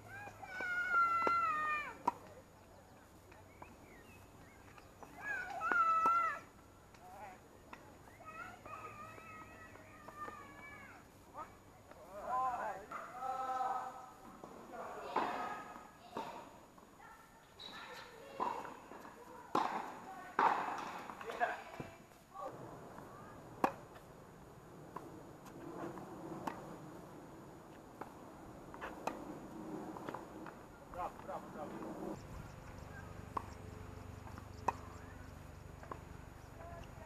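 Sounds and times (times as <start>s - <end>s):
faint court background: 0.0s - 37.0s
tennis ball being hit: 5.0s - 7.0s, 18.4s - 21.9s, 23.5s - 24.1s, 24.9s - 27.1s, 28.0s - 30.6s.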